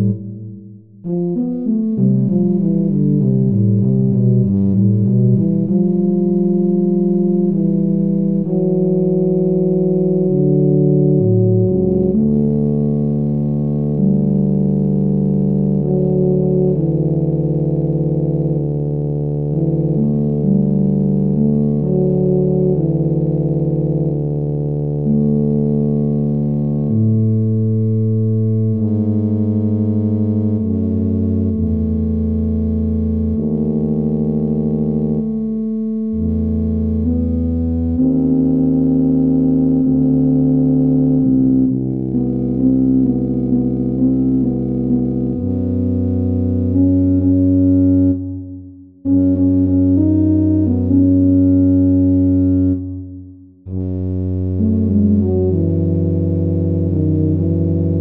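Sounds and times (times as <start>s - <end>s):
synthesized tuba notes: 0.0s - 58.0s.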